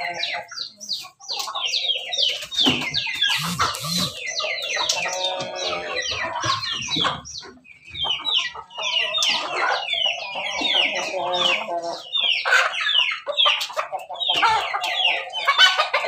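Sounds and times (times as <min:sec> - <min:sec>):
chickens clucking: 0:00.0 - 0:16.0
high falling chirps: 0:03.2 - 0:04.4.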